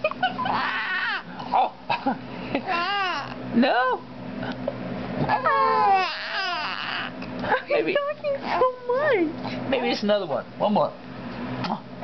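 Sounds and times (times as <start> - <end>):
baby cooing and squealing: 0.5 - 1.7, 2.7 - 3.4, 5.3 - 7.2.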